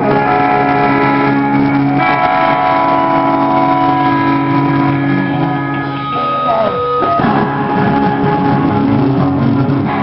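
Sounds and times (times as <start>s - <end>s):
distorted electric guitars: 0.0s - 10.0s.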